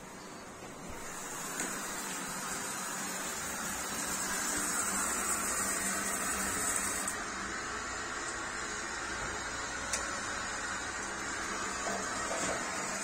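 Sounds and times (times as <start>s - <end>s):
steam hissing: 0.8s - 13.0s.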